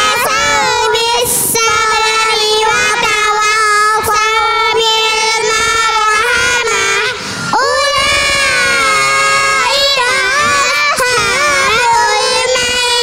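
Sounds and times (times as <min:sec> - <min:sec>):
children singing together: 0:00.0 - 0:13.0.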